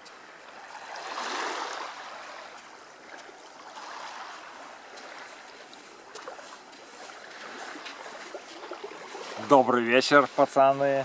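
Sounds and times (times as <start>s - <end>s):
small waves lapping on shore: 0.0s - 11.0s.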